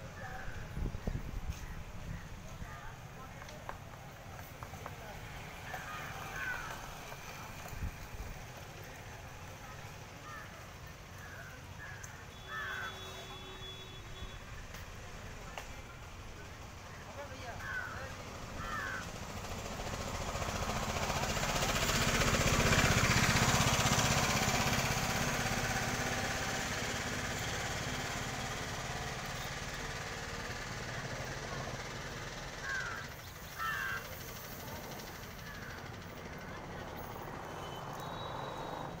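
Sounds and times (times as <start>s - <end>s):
outdoor background noise: 0.0s - 39.0s.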